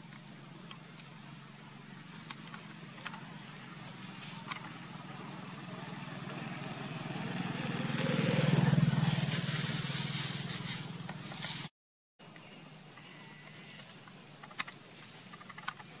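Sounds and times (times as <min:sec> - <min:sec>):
vehicle engine passing: 0:01.8 - 0:11.7.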